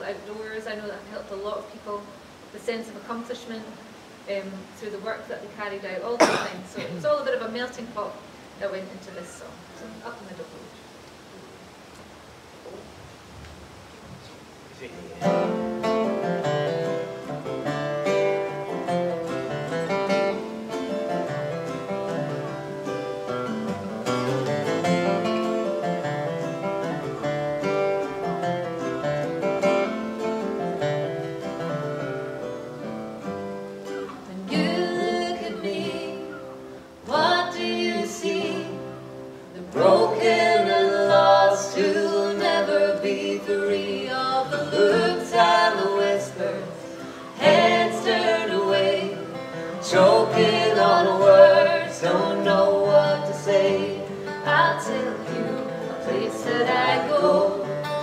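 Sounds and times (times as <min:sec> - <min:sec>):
acoustic guitars playing: 0:14.9 - 0:58.0
person singing: 0:34.3 - 0:36.4, 0:37.1 - 0:39.0, 0:39.6 - 0:58.0.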